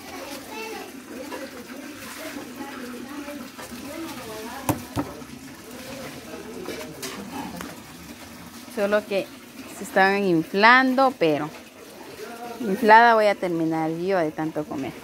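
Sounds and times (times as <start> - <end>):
child's voice: 0.0 - 1.6
indistinct background talk: 0.0 - 15.0.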